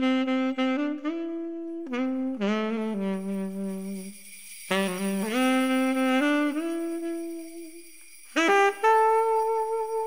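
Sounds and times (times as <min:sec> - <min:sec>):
jazz saxophone phrase: 0:00.0 - 0:07.8, 0:08.4 - 0:10.0.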